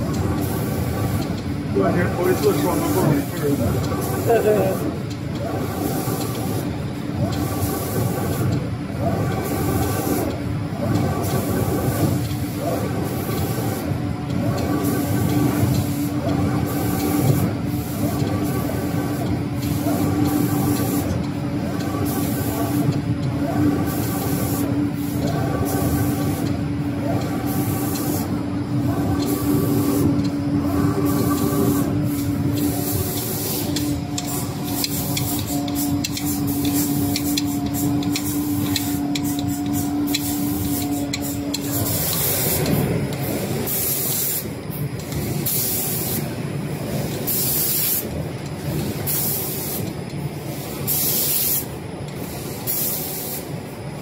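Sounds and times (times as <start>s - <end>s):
spray guns hissing in bursts: 0.0s - 54.0s
steady machine hum: 0.0s - 54.0s.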